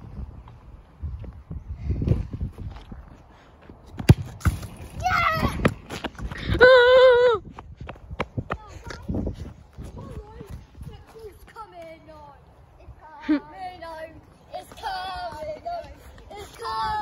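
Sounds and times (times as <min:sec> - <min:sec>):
football kick thud: 0:04.0 - 0:04.8.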